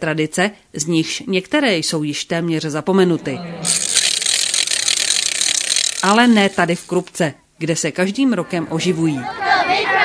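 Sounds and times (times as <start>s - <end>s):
wooden ratchets clattering: 3.7s - 7.1s.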